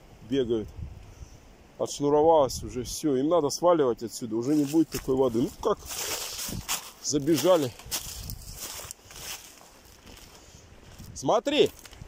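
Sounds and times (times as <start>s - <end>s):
faint background hiss: 0.0s - 12.0s
footsteps on pebbles: 4.4s - 12.0s.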